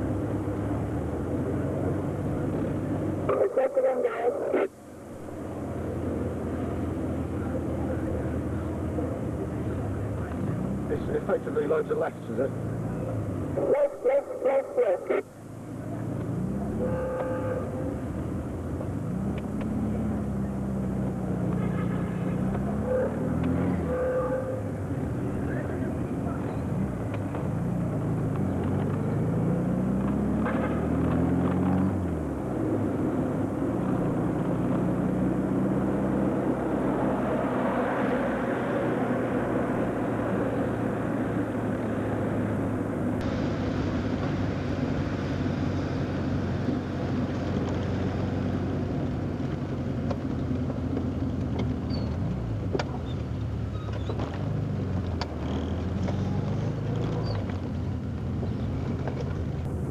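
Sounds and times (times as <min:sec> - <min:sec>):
road noise: 0:00.0 - 0:59.9
car engine revving through gears: 0:26.6 - 0:44.7.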